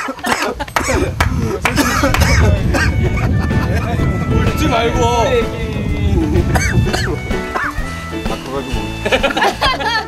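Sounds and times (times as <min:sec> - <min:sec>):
background music: 0:01.8 - 0:10.0.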